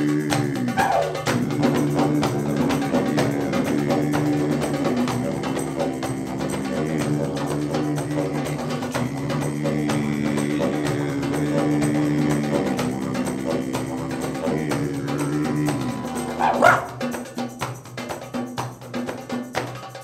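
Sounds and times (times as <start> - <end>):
didgeridoo drone: 0.0 - 17.3
djembe hand drums: 0.0 - 20.0
yelp-like cry: 0.8 - 1.3, 14.0 - 17.1.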